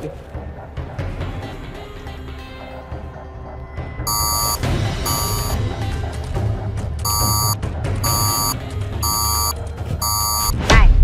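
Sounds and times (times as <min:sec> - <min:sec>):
background music: 0:00.0 - 0:11.0
metal detector wand beeping: 0:04.1 - 0:05.6, 0:07.1 - 0:10.6.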